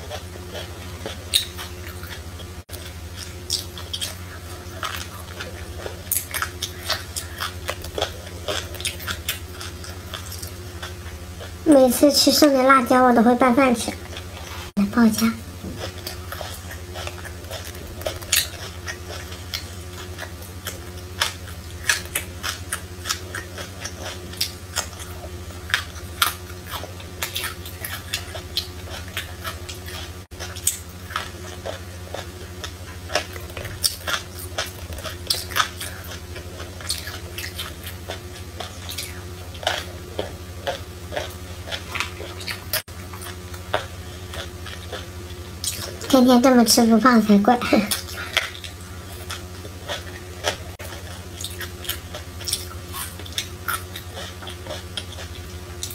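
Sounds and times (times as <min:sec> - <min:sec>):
person chewing food: 0:00.0 - 0:11.7, 0:13.9 - 0:14.8, 0:15.4 - 0:46.2, 0:47.8 - 0:55.9
steady low hum: 0:00.0 - 0:55.9.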